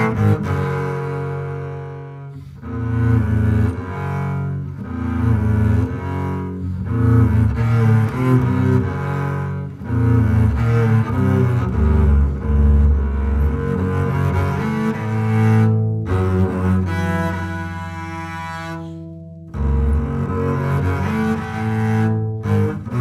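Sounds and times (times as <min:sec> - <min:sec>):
bowed double bass: 0:00.0 - 0:23.0.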